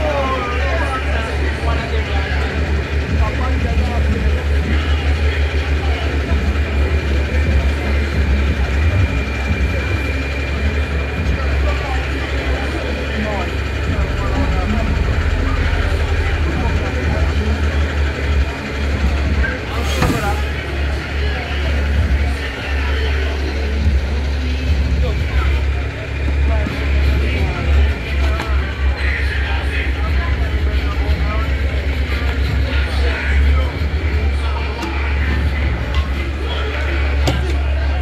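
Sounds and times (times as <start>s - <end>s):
indistinct voices talking: 0.0s - 38.0s.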